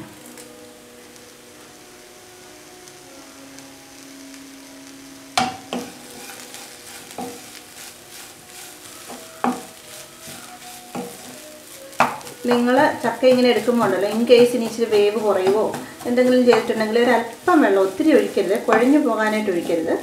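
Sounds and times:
food sizzling in a wok: 0:00.0 - 0:20.0
wooden spatula scraping a pan: 0:05.7 - 0:20.0.

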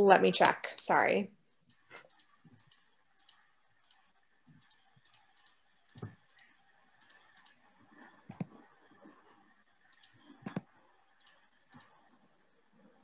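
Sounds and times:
computer mouse clicks: 0:01.5 - 0:12.2.

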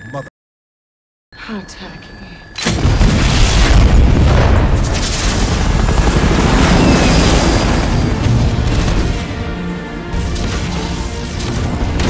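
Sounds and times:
fireworks booming and crackling: 0:02.8 - 0:09.3
helicopter rotor: 0:04.5 - 0:12.0.

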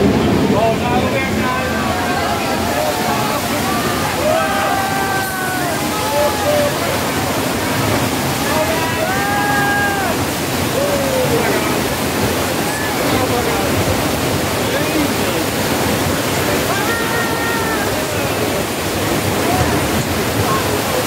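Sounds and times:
torrent of water rushing: 0:00.0 - 0:21.0.

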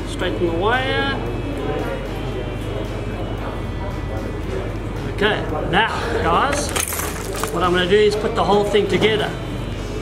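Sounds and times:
faint music: 0:00.0 - 0:10.0
low electrical hum: 0:00.0 - 0:10.0.

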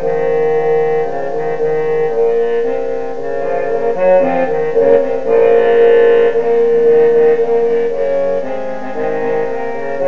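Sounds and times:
trombone music: 0:00.0 - 0:10.0.

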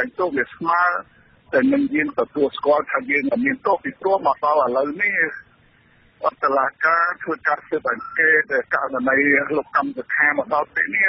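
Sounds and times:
person reading news report: 0:00.0 - 0:11.0.

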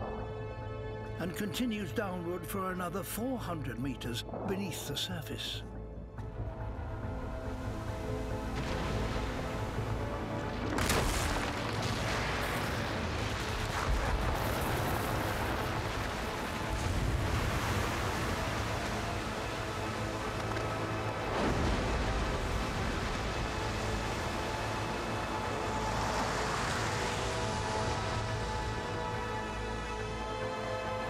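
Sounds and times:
orchestral music: 0:00.0 - 0:13.5
ice crashing into water: 0:10.4 - 0:24.5.

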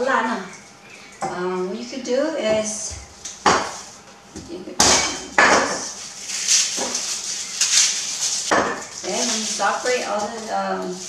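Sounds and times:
garlic skins crackling: 0:00.3 - 0:11.0.

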